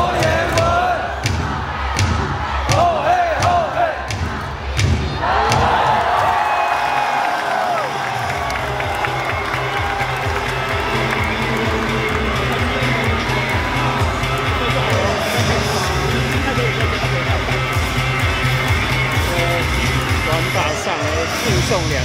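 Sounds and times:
cheer music with bass beat: 0.0s - 22.0s
crowd shouting and cheering: 0.0s - 22.0s.

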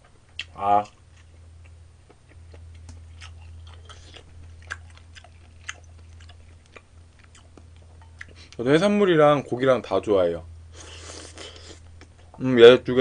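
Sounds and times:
steady low hum: 0.0s - 13.0s
person chewing: 0.4s - 8.6s, 10.8s - 12.2s.

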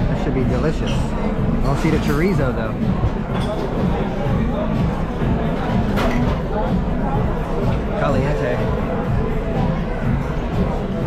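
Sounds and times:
diners chattering: 0.0s - 11.0s.

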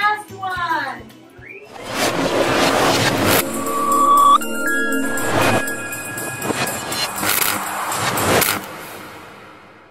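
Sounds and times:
music: 0.0s - 9.8s
whoosh sound effect: 1.7s - 8.5s.

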